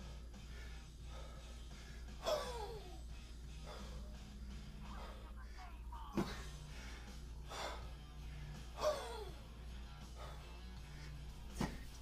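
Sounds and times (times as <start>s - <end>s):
person breathing: 0.0s - 2.2s, 3.0s - 8.8s, 9.4s - 11.5s
steady low hum: 0.0s - 12.0s.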